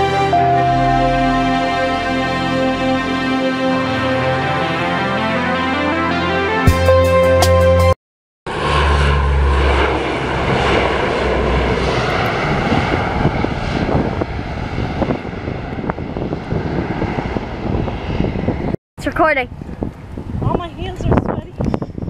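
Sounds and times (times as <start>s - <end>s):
aircraft engine rumble: 8.5s - 18.8s.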